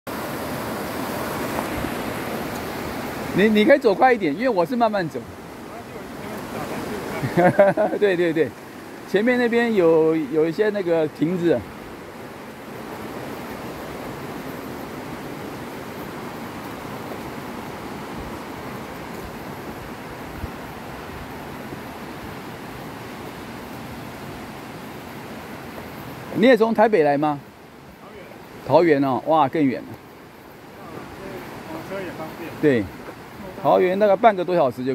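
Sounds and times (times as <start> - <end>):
stream rushing over rocks: 0.1 - 34.9.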